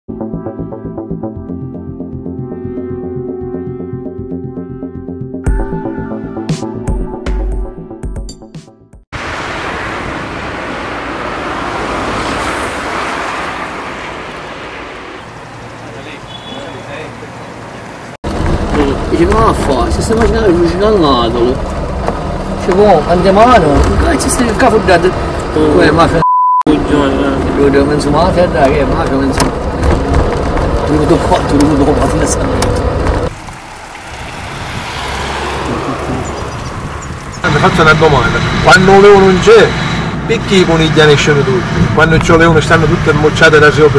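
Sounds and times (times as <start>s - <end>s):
vehicle rushing by: 9.2s - 26.2s, 26.8s - 43.9s.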